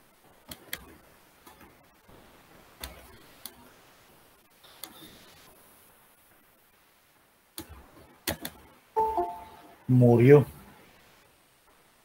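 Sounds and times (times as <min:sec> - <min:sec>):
computer mouse clicks: 0:00.5 - 0:00.9, 0:07.6 - 0:08.6.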